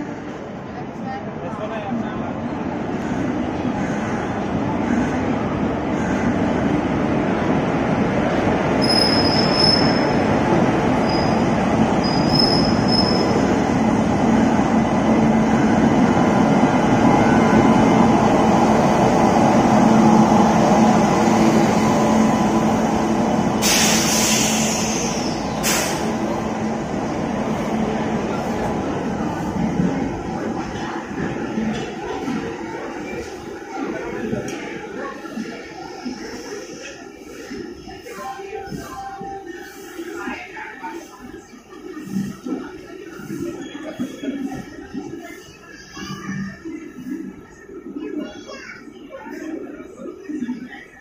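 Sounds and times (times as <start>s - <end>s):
loud hiss: 23.6s - 26.2s.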